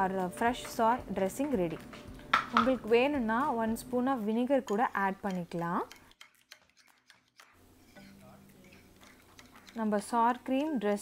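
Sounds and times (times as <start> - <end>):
metal spoon stirring in bowl: 0.4 - 11.0.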